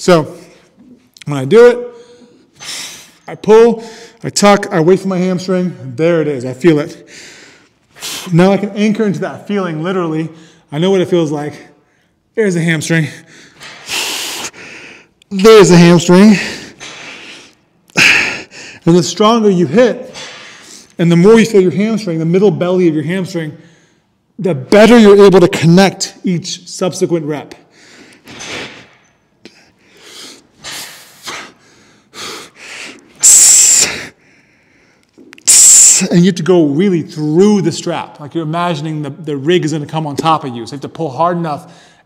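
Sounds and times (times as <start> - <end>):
man breathing forcefully: 13.2 - 15.1, 16.3 - 18.8, 29.7 - 33.1
sharp hissing exhale: 13.5 - 15.1.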